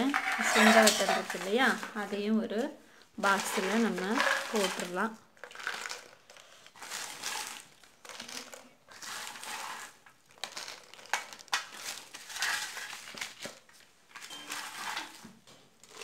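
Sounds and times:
newspaper crinkling: 0:03.2 - 0:16.0
dried pieces clicking in plastic jar: 0:03.3 - 0:13.6.

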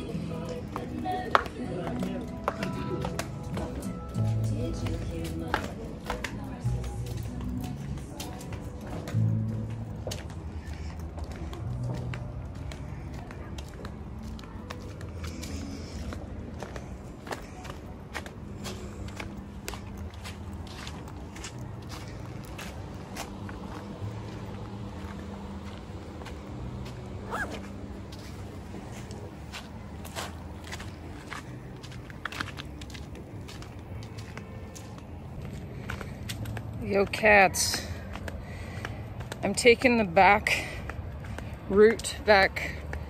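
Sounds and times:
footsteps on gravel: 0:00.0 - 0:43.0
low steady hum: 0:00.0 - 0:43.0.

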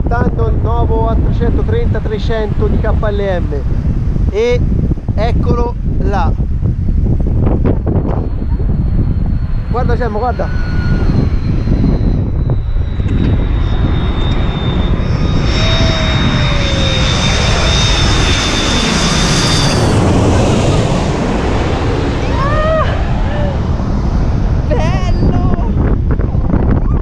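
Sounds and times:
jet engines whining overhead: 0:00.0 - 0:27.0
wind noise on microphone: 0:00.0 - 0:27.0.

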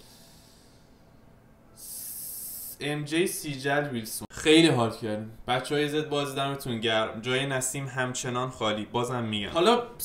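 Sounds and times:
man breathing in: 0:00.0 - 0:02.8.

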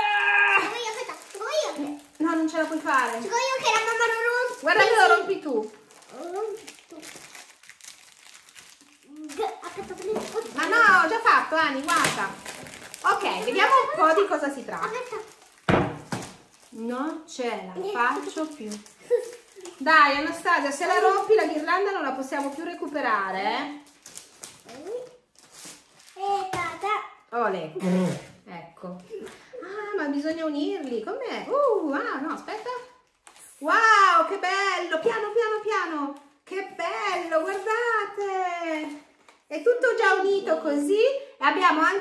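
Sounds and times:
plastic packaging crinkling: 0:00.0 - 0:26.9, 0:35.0 - 0:39.5.

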